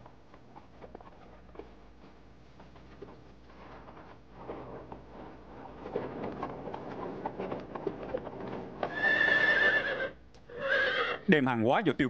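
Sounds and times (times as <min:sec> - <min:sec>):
horse hooves clopping: 0:00.0 - 0:11.0
horse neighing: 0:08.8 - 0:11.3.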